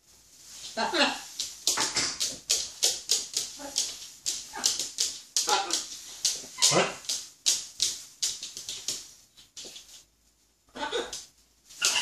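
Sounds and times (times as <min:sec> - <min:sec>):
young macaws begging squawks: 0:10.8 - 0:11.2, 0:11.8 - 0:12.0.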